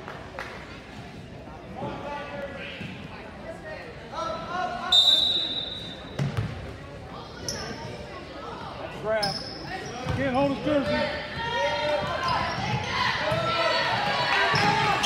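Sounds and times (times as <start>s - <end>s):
referee's whistle blast: 4.9s - 6.1s.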